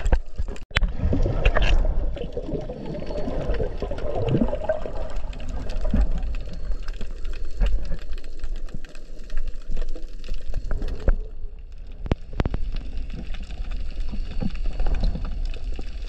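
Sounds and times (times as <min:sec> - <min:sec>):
crackle of small clicks: 0:00.0 - 0:16.0
water sloshing and gurgling: 0:00.0 - 0:16.0.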